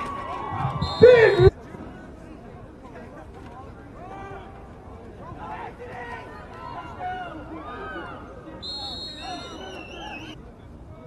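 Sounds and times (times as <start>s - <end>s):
crowd shouting: 0.0s - 1.6s
referee's whistle: 0.7s - 1.5s, 8.6s - 10.4s.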